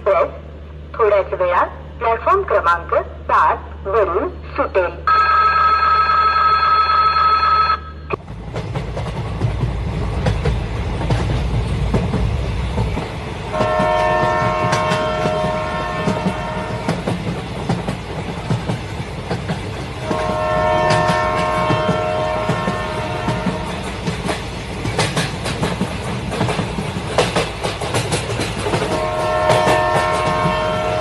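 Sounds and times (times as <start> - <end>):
train rumbling and clattering on rails: 0.0 - 5.1, 8.1 - 31.0
train horn blasts: 13.5 - 17.1, 20.0 - 23.9, 28.9 - 31.0.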